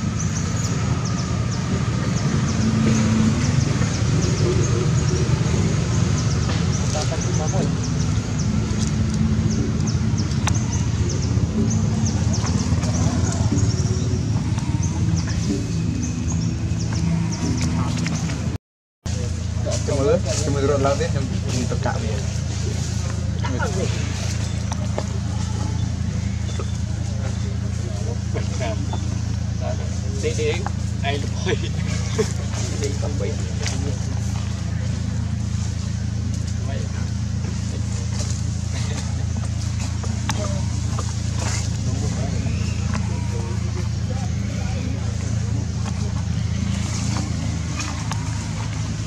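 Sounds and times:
engine idling: 0:00.0 - 0:49.0
faint voices: 0:00.0 - 0:49.0
steady low hum: 0:00.0 - 0:49.0.

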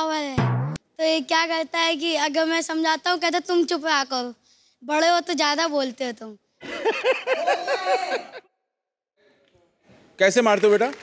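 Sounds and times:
woman laughing heartily: 0:06.6 - 0:08.5.

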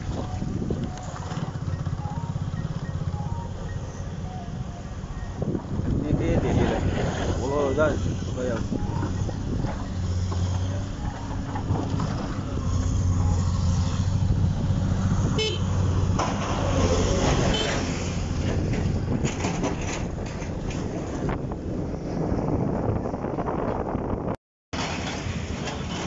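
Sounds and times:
vehicle engine running: 0:00.0 - 0:05.7
knocks and rattles: 0:17.2 - 0:21.4.

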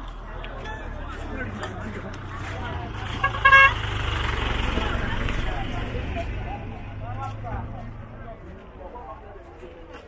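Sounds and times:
minibus engine rumble: 0:00.0 - 0:10.0
people talking: 0:00.0 - 0:10.0.

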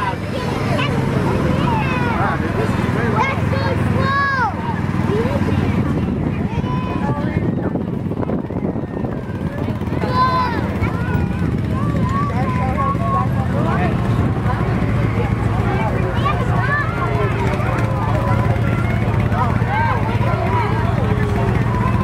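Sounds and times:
children's voices: 0:00.0 - 0:22.0
crowd chatter: 0:00.0 - 0:22.0
vehicle engines droning: 0:00.0 - 0:22.0.

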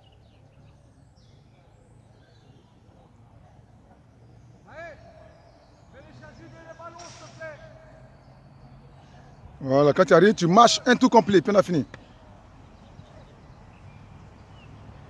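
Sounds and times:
distant voices calling out: 0:01.3 - 0:14.9.

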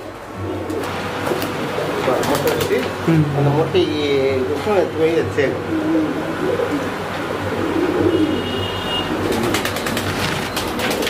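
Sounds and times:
pigeons cooing: 0:00.0 - 0:03.2, 0:05.4 - 0:11.0.

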